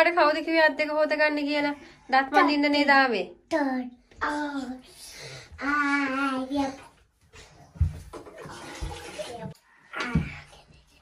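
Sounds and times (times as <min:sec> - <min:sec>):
tap water running into basin: 0:07.7 - 0:10.5.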